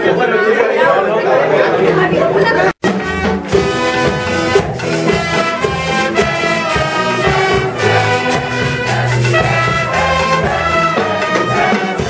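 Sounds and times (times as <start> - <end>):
brass band playing lively tune: 2.8 - 12.0.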